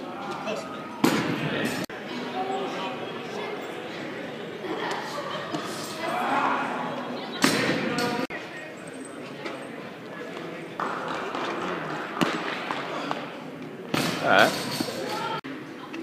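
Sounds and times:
voices in echoing hall: 0.0s - 16.0s.

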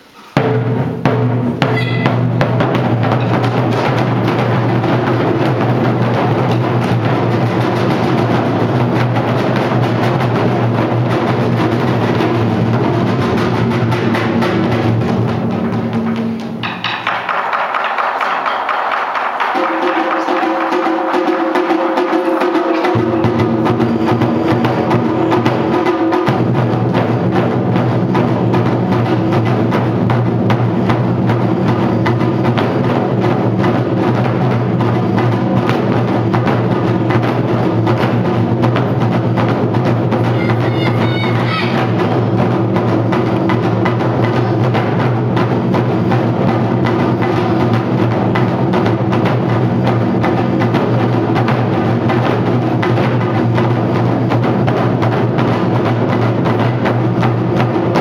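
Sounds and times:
taiko drums: 0.0s - 58.0s.

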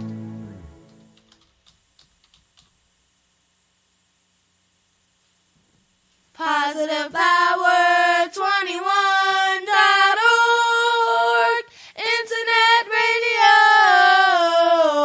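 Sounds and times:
solo voice singing unaccompanied: 6.4s - 15.0s.

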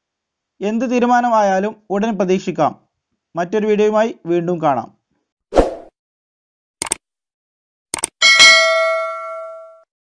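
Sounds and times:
notification bell ding: 8.2s - 9.9s.

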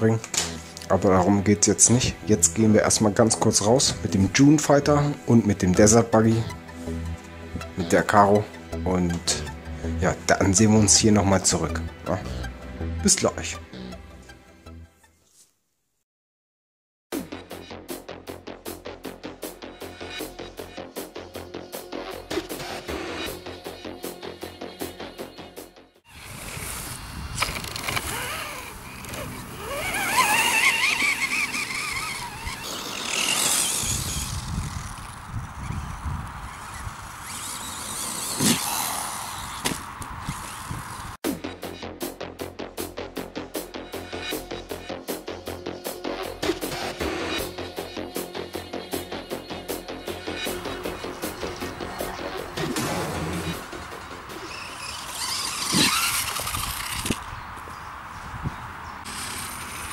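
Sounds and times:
rc car motor whine: 26.1s - 41.2s, 50.0s - 57.4s, 59.0s - 59.9s
tyres rumbling on grass: 26.2s - 41.2s.

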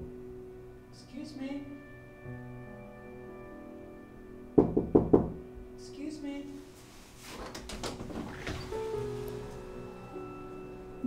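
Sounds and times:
soft background music: 0.0s - 11.0s
knuckles knocking on door: 4.6s - 5.4s.

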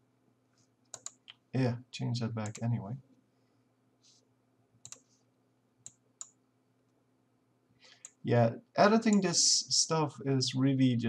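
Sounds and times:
computer mouse clicks: 0.9s - 1.4s, 2.4s - 2.7s, 4.8s - 5.2s, 5.8s - 6.4s.

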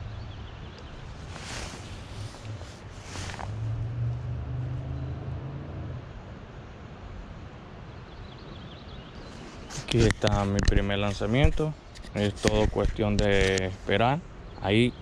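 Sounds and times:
wind rumbling on microphone: 0.0s - 14.0s
rustling swishes: 1.0s - 4.3s, 9.2s - 13.9s.

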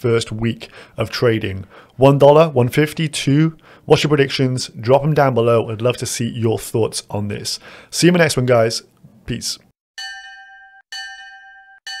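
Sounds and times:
bell-like chime strikes: 10.0s - 12.0s.

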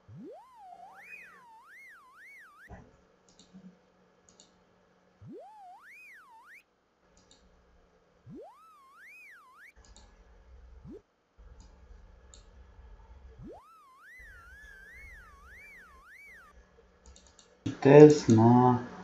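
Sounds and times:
electronic gliding indicator tone: 0.0s - 2.8s, 5.2s - 6.6s, 8.2s - 10.0s, 10.8s - 11.0s, 13.4s - 16.6s.

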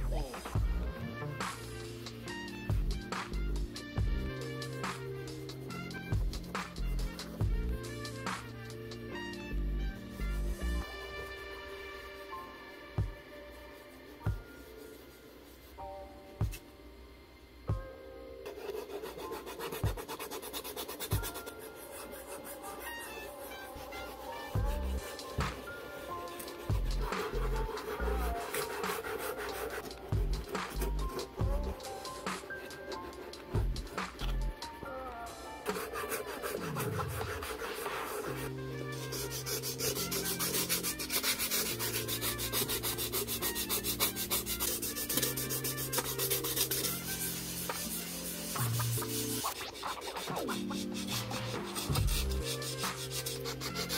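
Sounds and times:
background music with bass line: 0.0s - 11.6s, 24.5s - 25.7s, 26.3s - 28.6s, 29.9s - 32.6s, 33.4s - 35.8s, 50.4s - 53.9s
sandpaper rubbing on leather: 0.2s - 12.2s, 13.5s - 15.8s, 18.5s - 34.7s, 35.6s - 53.9s.

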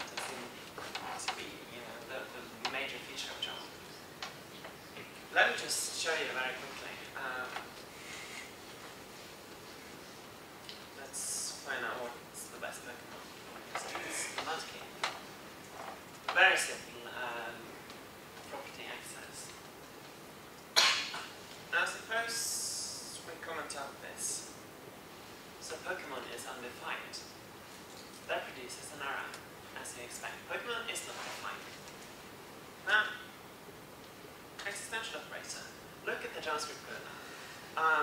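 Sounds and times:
sharp cough: 20.8s - 21.3s.

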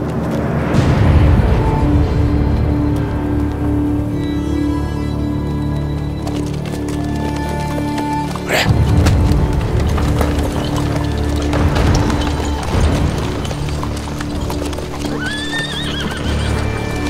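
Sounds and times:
background music low tones: 0.0s - 17.0s
horses hooves clip-clopping: 0.0s - 17.0s
horse whinnying: 6.8s - 11.5s, 12.2s - 17.0s.

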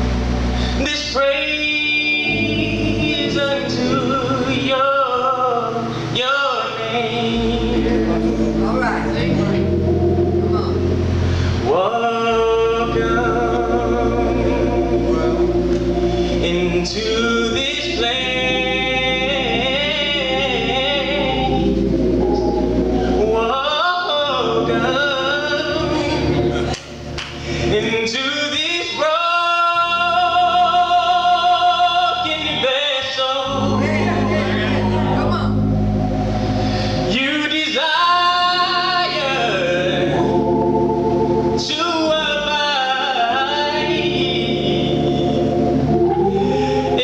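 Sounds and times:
man singing gospel into microphone: 0.6s - 22.4s, 23.0s - 26.8s, 27.4s - 35.3s, 36.8s - 47.0s.

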